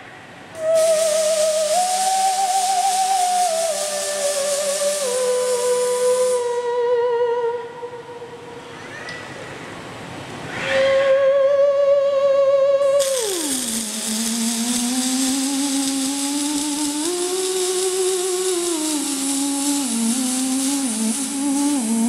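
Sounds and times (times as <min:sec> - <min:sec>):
welding arc hiss: 0:00.0 - 0:07.1, 0:12.8 - 0:22.0.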